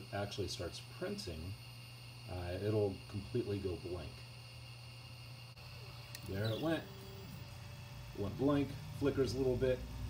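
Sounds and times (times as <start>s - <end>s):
printer low hum: 0.0s - 10.0s
high-pitched printer tones: 5.5s - 8.0s.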